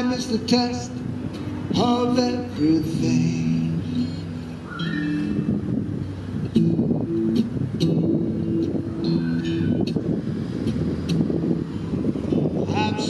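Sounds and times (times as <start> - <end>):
acoustic guitar strumming: 0.0 - 13.0
street traffic rumble: 0.0 - 13.0.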